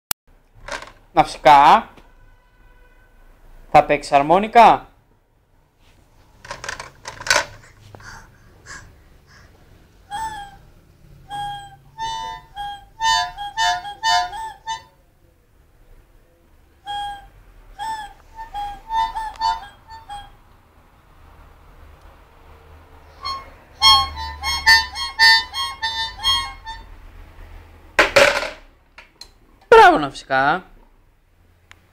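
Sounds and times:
child playing harmonica: 0:10.0 - 0:15.0, 0:16.8 - 0:20.5, 0:23.0 - 0:27.2.

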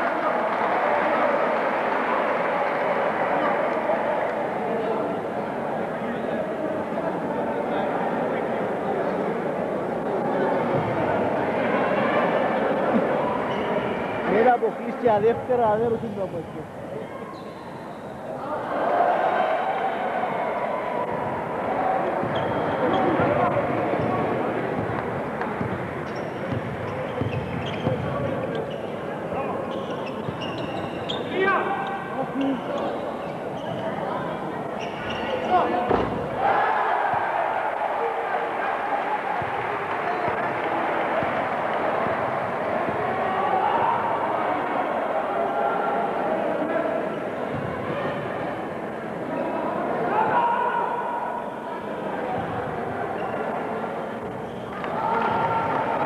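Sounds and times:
basketball bouncing on court: 0:24.7 - 0:28.3.

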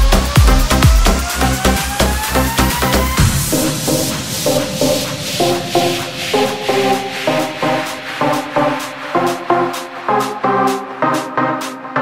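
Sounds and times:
white-noise sweep: 0:00.2 - 0:10.1.

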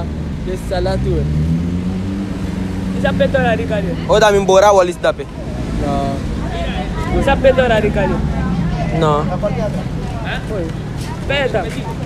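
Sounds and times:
car driving past: 0:00.6 - 0:11.2.

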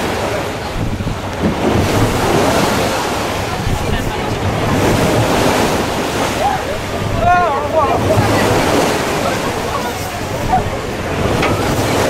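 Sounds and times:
sea wash: 0:00.0 - 0:12.0
wind buffeting microphone: 0:00.0 - 0:12.0.

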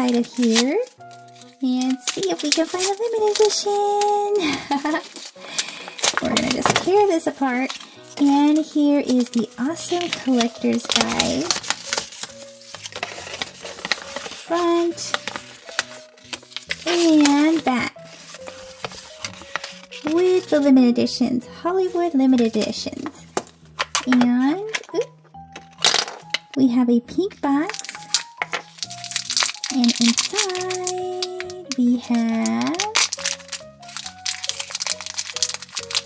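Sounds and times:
paper leaflet clicks: 0:00.0 - 0:20.4, 0:27.7 - 0:36.0
plastic wrapper crinkling: 0:00.0 - 0:20.6, 0:22.4 - 0:26.5, 0:27.7 - 0:36.0
soft background music: 0:00.0 - 0:36.0.

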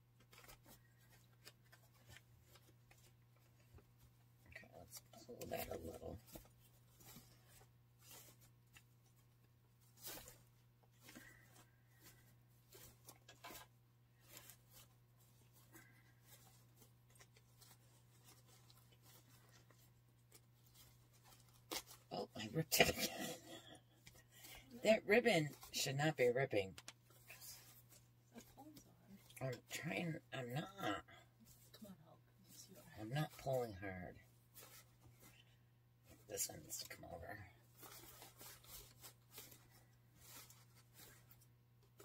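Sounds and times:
ribbon rustling and crinkling: 0:00.0 - 0:42.0
ribbon ripping: 0:15.8 - 0:22.1.

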